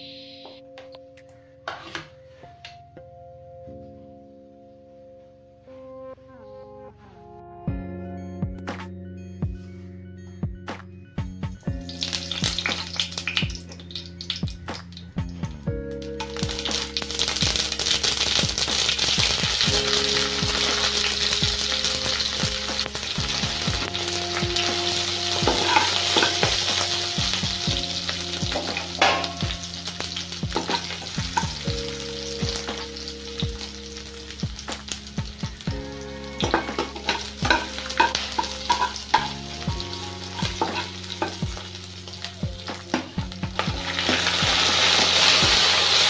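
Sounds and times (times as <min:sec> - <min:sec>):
food sizzling in hot oil: 0:11.7 - 0:15.0, 0:16.1 - 0:46.0.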